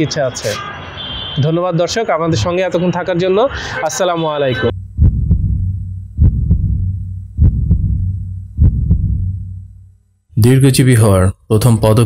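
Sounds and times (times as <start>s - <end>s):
heartbeat double thumps: 4.7s - 9.9s
low steady hum: 4.7s - 10.3s.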